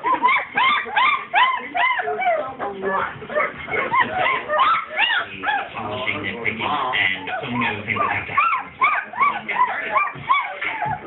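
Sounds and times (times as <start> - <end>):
puppies whimpering and yipping: 0.0 - 6.5, 7.1 - 11.0.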